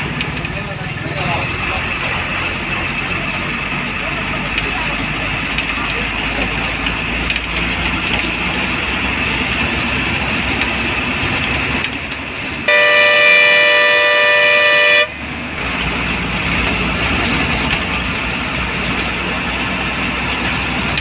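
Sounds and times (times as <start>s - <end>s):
bus engine and road noise: 0.0s - 21.0s
bus horn blast: 12.6s - 15.4s.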